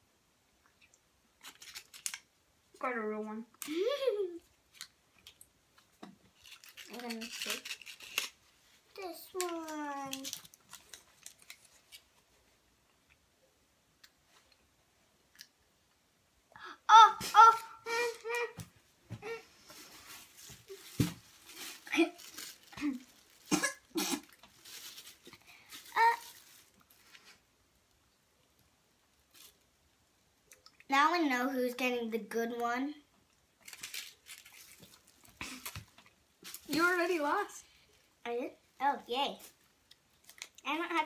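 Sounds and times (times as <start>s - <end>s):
girl's high wordless cries: 16.6s - 18.6s
girl coughing and gagging: 22.8s - 24.4s.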